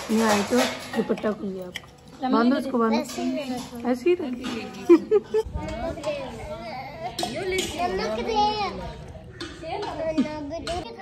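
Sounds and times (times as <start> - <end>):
young children chattering: 2.2 - 11.0.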